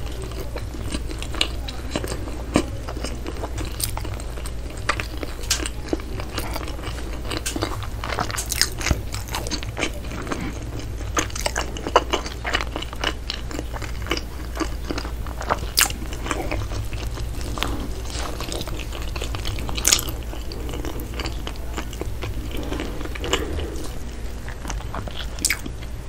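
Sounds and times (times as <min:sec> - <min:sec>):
person chewing bread: 0:00.0 - 0:26.0.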